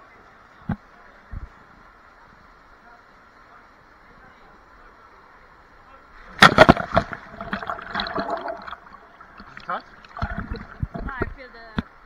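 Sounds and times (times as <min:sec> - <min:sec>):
loud splash into water: 0:06.4 - 0:08.9
water sloshing: 0:06.4 - 0:11.3.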